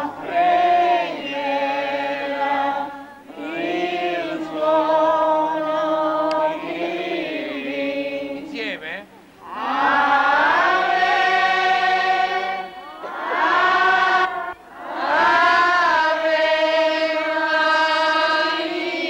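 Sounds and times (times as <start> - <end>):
crowd singing a hymn: 0.0 - 19.0.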